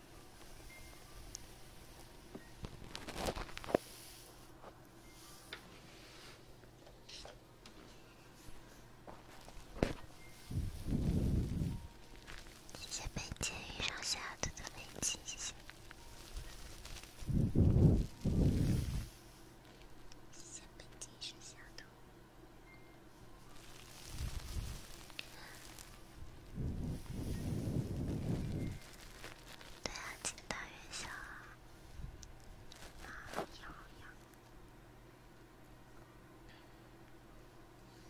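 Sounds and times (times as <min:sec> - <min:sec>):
soft close whispering: 0:12.7 - 0:19.1, 0:20.3 - 0:22.0, 0:23.7 - 0:31.6, 0:32.7 - 0:34.4.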